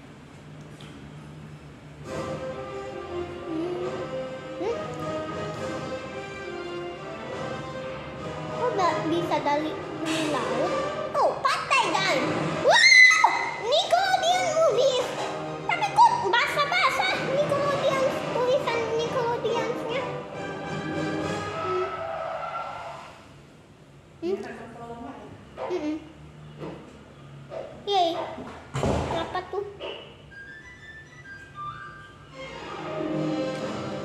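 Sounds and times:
music with sustained notes: 1.9 - 11.3, 14.3 - 22.9, 30.3 - 34.0
high-pitched cartoon voices: 8.8 - 20.2, 21.4 - 22.5
thud: 28.7 - 29.3.

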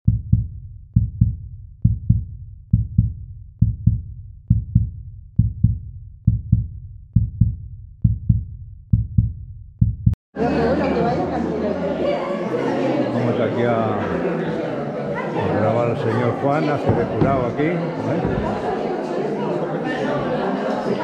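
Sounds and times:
heartbeat thumps: 0.0 - 10.2, 16.9 - 17.6, 18.2 - 18.6.

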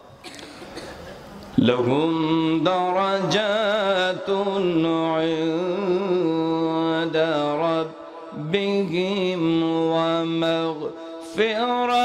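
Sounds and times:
man chanting into a microphone: 1.5 - 12.0.

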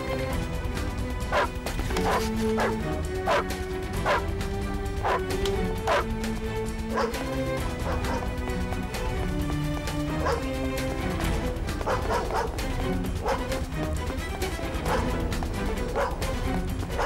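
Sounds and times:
background music with held notes: 0.0 - 17.0
dog barking: 1.3 - 4.3, 5.0 - 6.1, 6.9 - 8.4, 10.1 - 10.6, 11.8 - 13.6, 14.8 - 15.2, 15.8 - 17.0.

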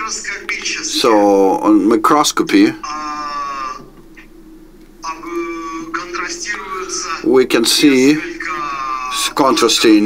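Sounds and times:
man saying uhh: 2.6 - 3.9, 5.0 - 10.0.

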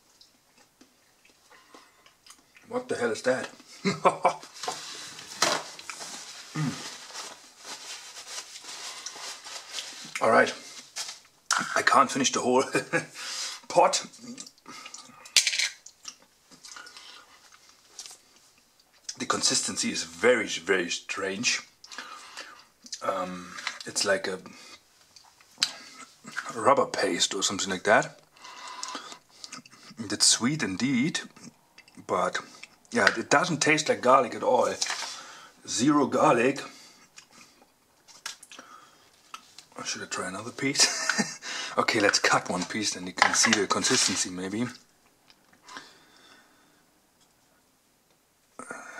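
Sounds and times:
faint chewing: 0.1 - 2.7, 28.3 - 30.0, 37.0 - 39.7
chewing: 0.2 - 2.7
paper handling: 4.5 - 11.2.

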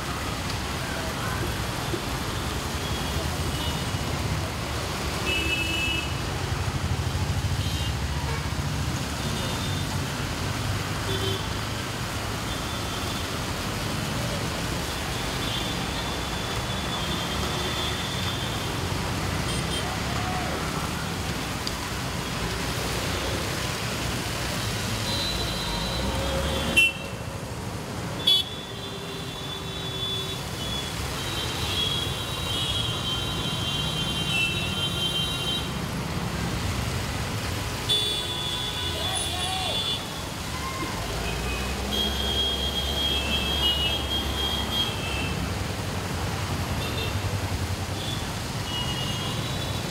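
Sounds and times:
tyres hissing on wet asphalt: 0.0 - 49.9.

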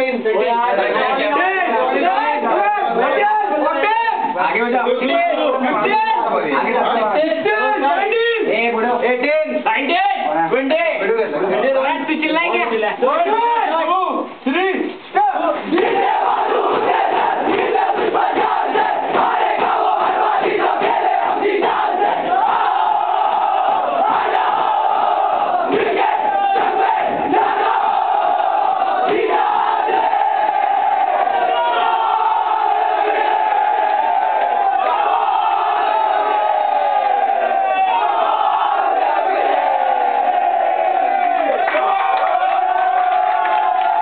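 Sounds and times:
group of men chanting in unison: 15.7 - 36.2.

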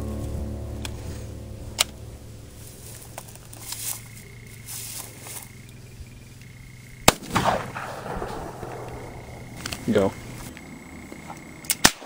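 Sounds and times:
faint crack: 7.1 - 12.0.

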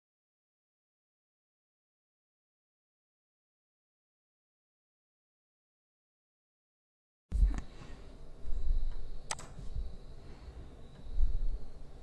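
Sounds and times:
faint high whine: 7.3 - 12.0
low background rumble: 7.3 - 12.0
computer mouse click: 8.9 - 9.6.

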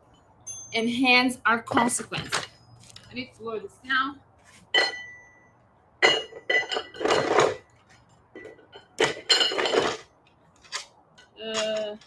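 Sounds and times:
dumbbell plates clinking: 4.8 - 11.9.

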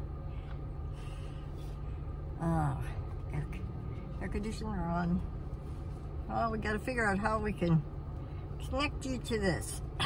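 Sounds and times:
air conditioning hiss: 0.0 - 10.0.

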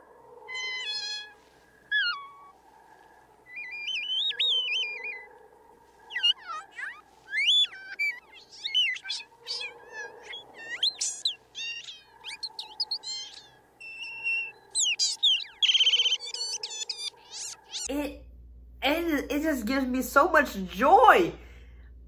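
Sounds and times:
faint steady hum: 0.0 - 22.0
creature chirping and twittering: 0.5 - 2.6, 3.5 - 5.4, 6.0 - 17.9.

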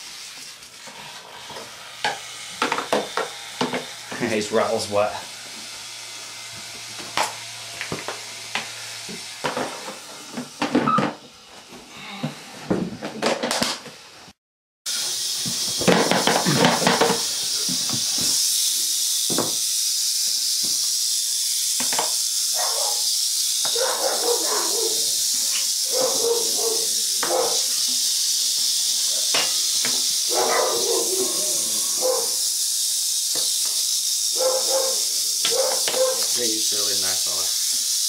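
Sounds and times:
rattlesnake rattling: 14.9 - 38.0.

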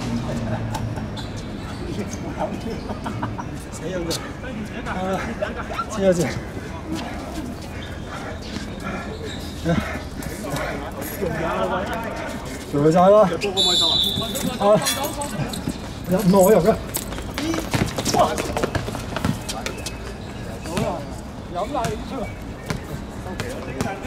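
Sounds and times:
whistle blast: 13.6 - 14.6.

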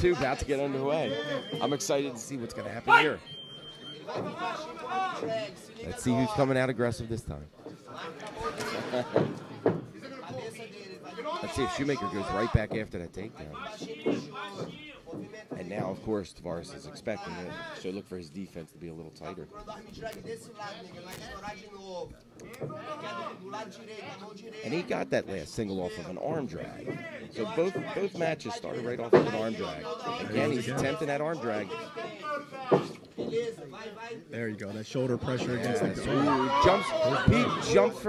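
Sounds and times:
high-pitched beep: 1.0 - 2.0
spectators shouting: 35.7 - 38.0.

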